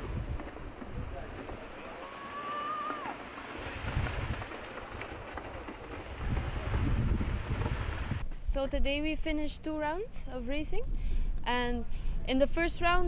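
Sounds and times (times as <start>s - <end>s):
wind buffeting microphone: 0.0s - 2.2s, 2.8s - 9.0s
sea washing: 0.0s - 8.2s.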